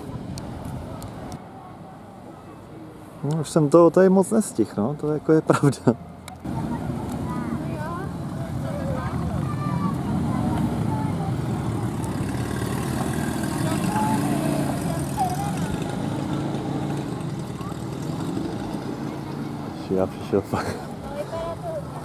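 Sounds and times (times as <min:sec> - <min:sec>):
people talking: 0:06.3 - 0:12.1, 0:13.4 - 0:18.4, 0:19.0 - 0:22.0
engine running: 0:10.2 - 0:20.4.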